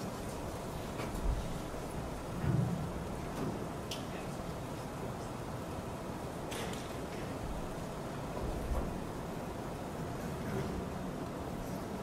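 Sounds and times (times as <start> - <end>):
room background noise: 0.0 - 12.0.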